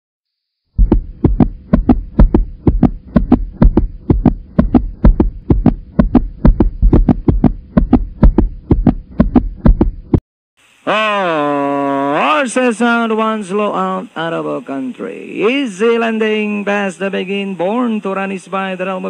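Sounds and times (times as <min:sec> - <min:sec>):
heartbeat thumps: 0:00.8 - 0:10.2
faint steady hum: 0:00.8 - 0:19.0.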